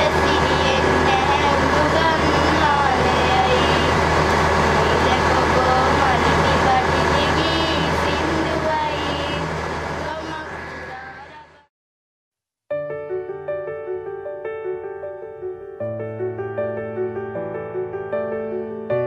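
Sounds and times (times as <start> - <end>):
steady low hum: 0.0 - 11.7.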